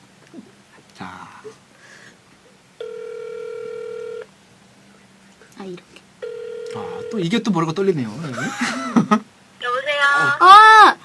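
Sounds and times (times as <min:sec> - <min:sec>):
phone ringback beep: 0:02.8 - 0:04.2, 0:06.2 - 0:07.3.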